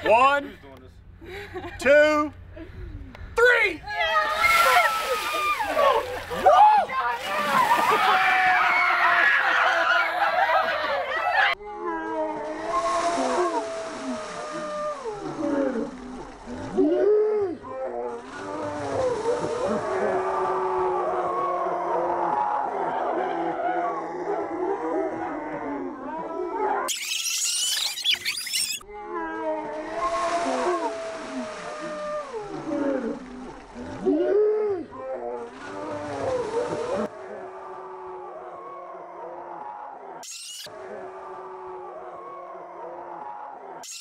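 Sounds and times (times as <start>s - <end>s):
water pouring and splashing: 4.3s - 8.5s, 12.6s - 16.8s, 29.8s - 34.0s.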